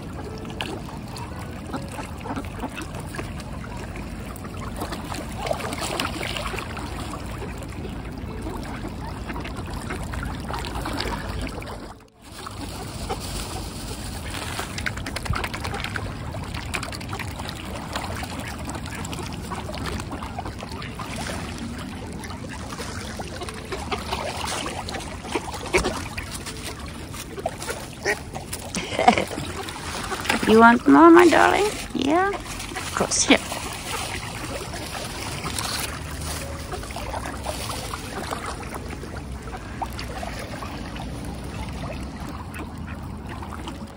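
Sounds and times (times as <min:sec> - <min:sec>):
swans and ducks dabbling: 0:00.0 - 0:43.9
water splashing and lapping: 0:00.0 - 0:43.9.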